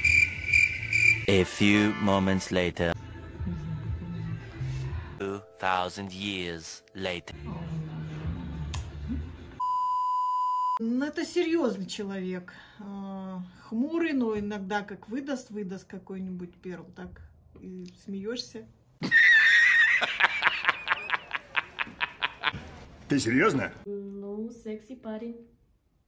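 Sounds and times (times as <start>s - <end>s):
man laughing heartily: 19.0s - 22.6s.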